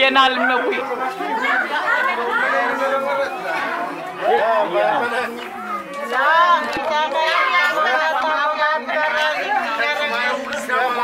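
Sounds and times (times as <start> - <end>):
adults chattering: 0.0 - 11.0.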